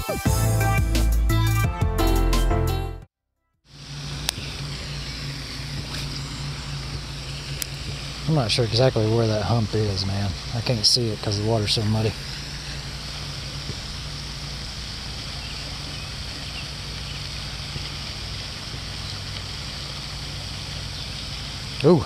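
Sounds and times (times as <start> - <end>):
fountain spray hissing: 3.7 - 22.0
low steady hum: 3.7 - 22.0.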